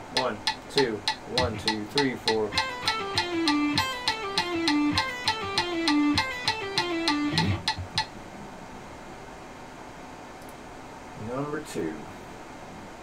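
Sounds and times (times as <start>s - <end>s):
faint room hiss: 0.0s - 13.0s
electric guitar legato runs: 1.2s - 8.1s.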